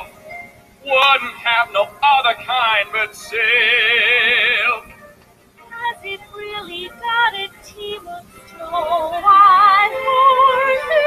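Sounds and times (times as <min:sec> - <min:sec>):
person singing show tune: 0:00.9 - 0:04.9.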